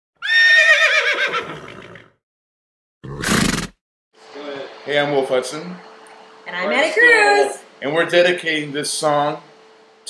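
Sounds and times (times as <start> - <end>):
horse whinny: 0.2 - 2.2, 3.0 - 3.8.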